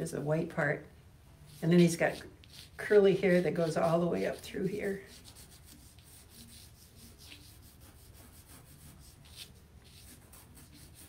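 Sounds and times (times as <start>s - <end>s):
pencil scratching on paper: 1.5s - 11.0s.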